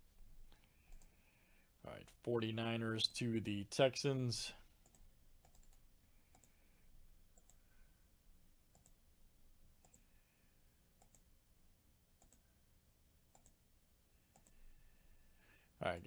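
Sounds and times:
computer mouse clicks: 0.6s - 1.2s, 4.8s - 6.6s, 7.3s - 7.7s, 8.7s - 9.0s, 9.8s - 10.1s, 11.0s - 11.3s, 12.2s - 12.5s, 13.3s - 13.6s, 14.3s - 14.6s.

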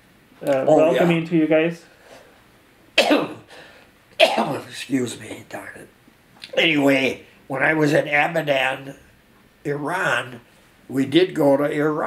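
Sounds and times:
elderly man coughing: 3.0s - 3.6s, 4.2s - 4.7s.

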